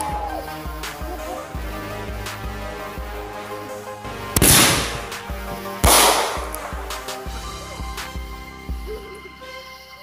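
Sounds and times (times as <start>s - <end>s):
background music: 0.0s - 10.0s
firework bangs with hiss: 4.4s - 7.3s.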